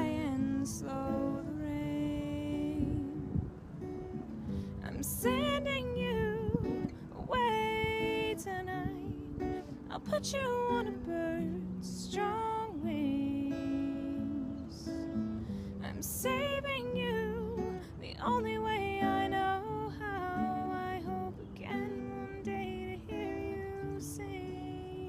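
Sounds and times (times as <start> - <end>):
acoustic guitar strumming: 0.0 - 25.0.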